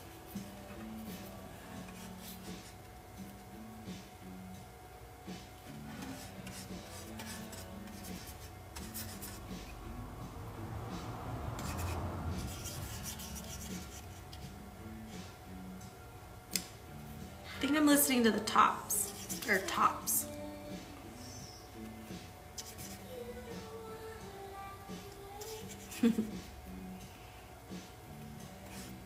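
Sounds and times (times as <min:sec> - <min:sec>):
faint background music: 0:00.0 - 0:29.0.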